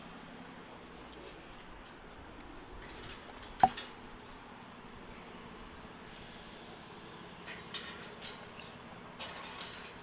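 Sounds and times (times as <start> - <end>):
faint street background: 0.0 - 10.0.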